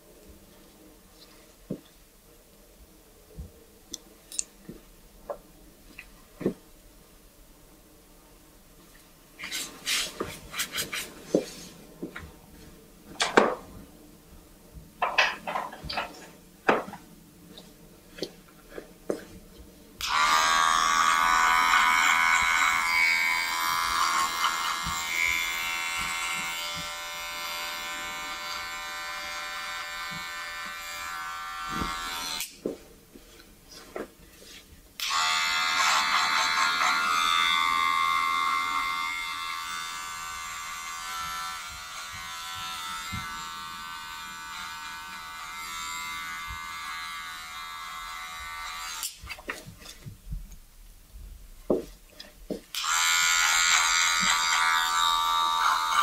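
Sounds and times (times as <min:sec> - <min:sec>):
electric hair clippers cutting hair: 0:20.0 - 0:32.6, 0:35.0 - 0:49.2, 0:52.7 - 0:56.0.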